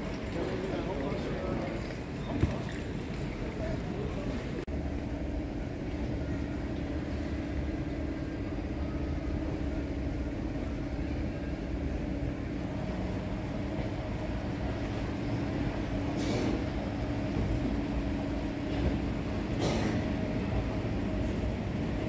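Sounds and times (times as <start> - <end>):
mechanical hum: 0.0 - 22.0.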